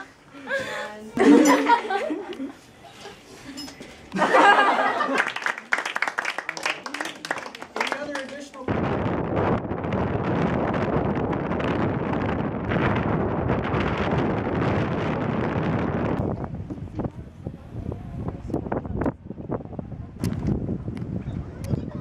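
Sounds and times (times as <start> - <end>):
wind buffeting microphone: 8.7 - 22.0.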